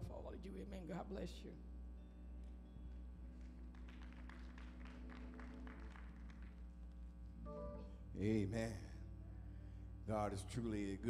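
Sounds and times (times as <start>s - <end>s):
low hum: 0.0s - 11.0s
congregation clapping: 3.3s - 7.1s
held keyboard note: 7.4s - 8.7s.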